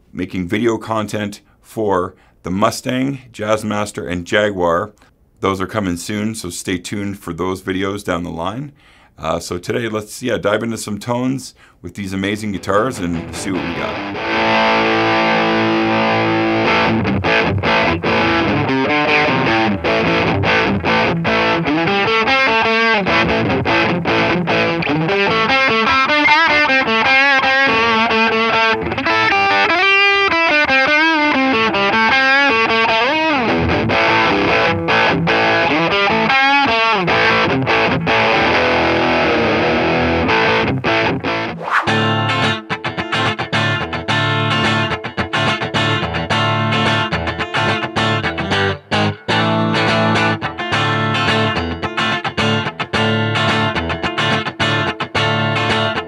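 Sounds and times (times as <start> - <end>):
overdriven electric guitar lead: 12.8 - 56.0.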